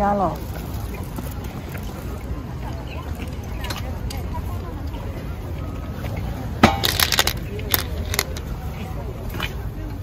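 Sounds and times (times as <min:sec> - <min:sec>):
faint voices of people: 0:00.0 - 0:10.0.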